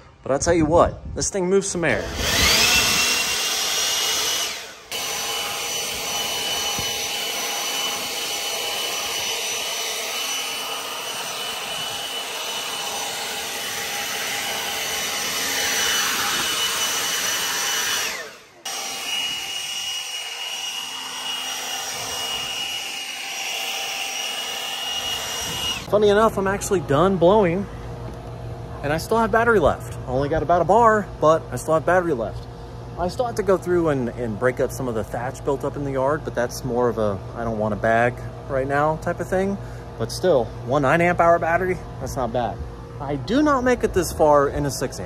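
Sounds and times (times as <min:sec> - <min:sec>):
leaf blower whining: 0:01.7 - 0:28.2.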